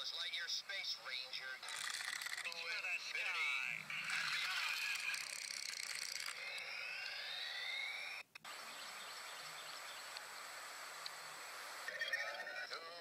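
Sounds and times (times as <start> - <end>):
toy car whines: 1.6 - 2.5, 4.0 - 8.2
steady hiss: 8.5 - 11.9.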